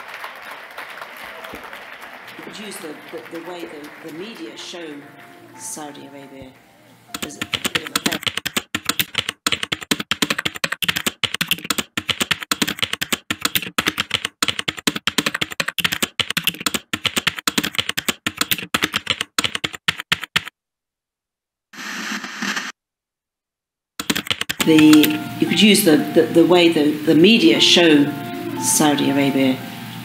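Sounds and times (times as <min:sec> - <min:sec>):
rapid keystroke clicks: 0:07.1 - 0:20.5, 0:24.0 - 0:25.2
brief burst of noise: 0:21.8 - 0:22.8.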